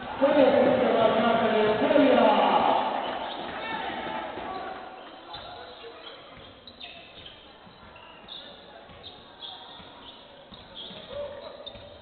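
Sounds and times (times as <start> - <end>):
players shouting: 0.0 - 5.0
sneaker squeaks: 3.0 - 12.0
basketball bouncing on hardwood: 6.3 - 12.0.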